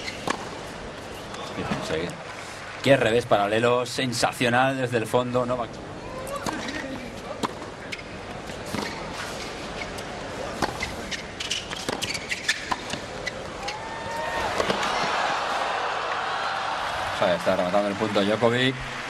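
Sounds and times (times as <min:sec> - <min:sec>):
crowd noise: 0:05.8 - 0:19.0
racket hitting tennis ball: 0:14.4 - 0:14.9.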